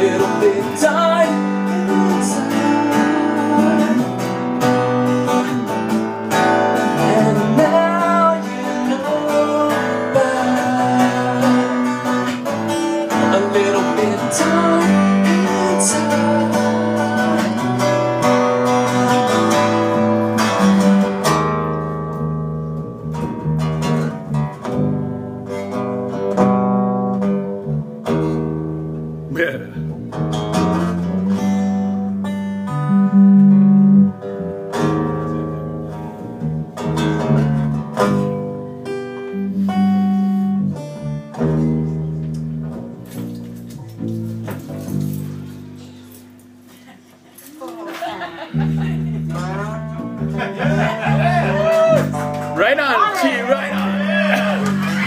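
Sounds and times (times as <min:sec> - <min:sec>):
electric bass: 0:00.0 - 0:46.7, 0:48.6 - 0:52.8
acoustic guitar: 0:00.0 - 0:55.0.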